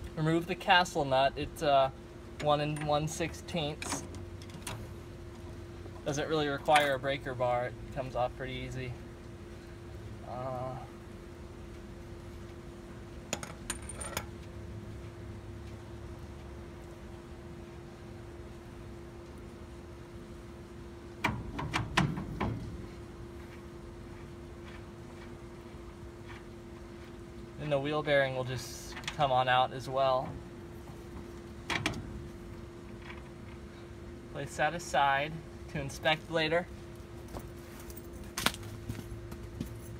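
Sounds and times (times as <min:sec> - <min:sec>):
steady low hum: 0:00.0 - 0:39.9
metal nut clinking: 0:13.3 - 0:14.3.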